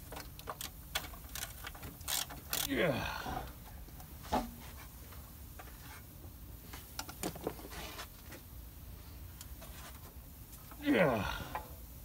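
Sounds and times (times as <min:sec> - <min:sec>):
engine parts clicking and knocking: 0:00.0 - 0:02.7.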